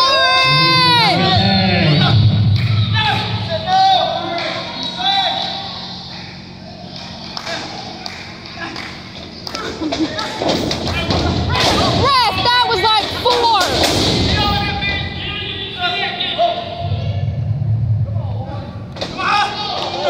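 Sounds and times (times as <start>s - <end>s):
people shouting: 0.0s - 6.0s, 19.0s - 20.0s.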